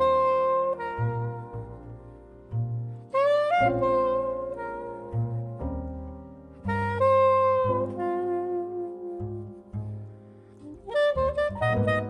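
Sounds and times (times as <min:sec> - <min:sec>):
plucked double bass: 0:00.0 - 0:12.0
soprano saxophone jazz melody: 0:00.0 - 0:12.0.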